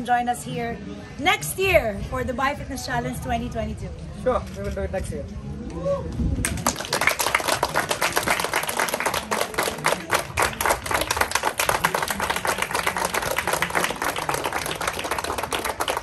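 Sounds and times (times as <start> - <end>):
crowd applauding: 6.4 - 16.0.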